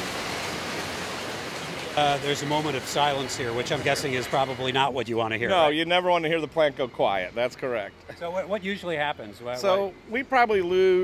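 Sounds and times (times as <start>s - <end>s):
sorting machinery rushing noise: 0.0s - 5.5s.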